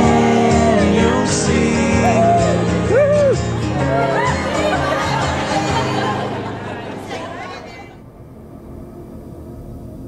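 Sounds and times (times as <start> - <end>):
steady low rumble: 5.3 - 10.0.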